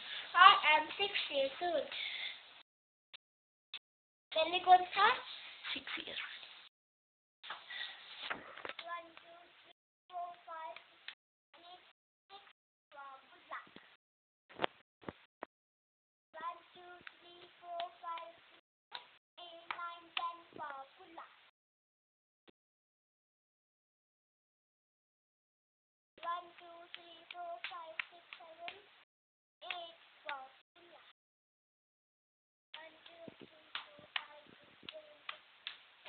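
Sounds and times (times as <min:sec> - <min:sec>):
child singing: 0:08.8 - 0:10.9, 0:16.4 - 0:18.5, 0:19.4 - 0:21.4, 0:26.2 - 0:28.9, 0:29.6 - 0:31.1, 0:32.8 - 0:35.4
sharp taps or claps: 0:18.9 - 0:20.8, 0:26.2 - 0:28.8, 0:29.6 - 0:30.4, 0:32.8 - 0:35.8.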